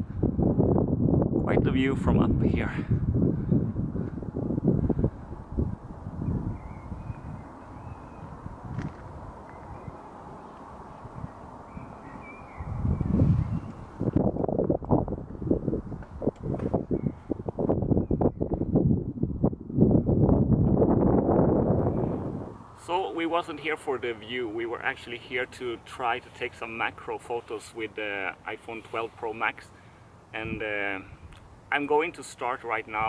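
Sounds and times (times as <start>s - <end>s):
wind buffeting microphone: 0.0s - 25.5s.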